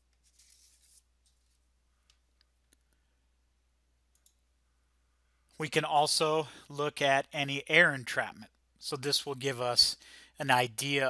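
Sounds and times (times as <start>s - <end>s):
computer mouse clicks: 4.1s - 4.4s.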